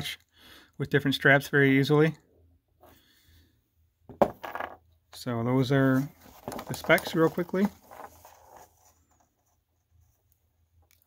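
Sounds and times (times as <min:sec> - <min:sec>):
watches rubbing and rustling: 0:05.6 - 0:10.8.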